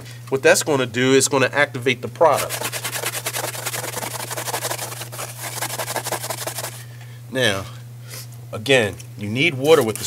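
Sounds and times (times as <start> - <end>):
scouring pad scrubbing a stovetop: 2.4 - 6.8.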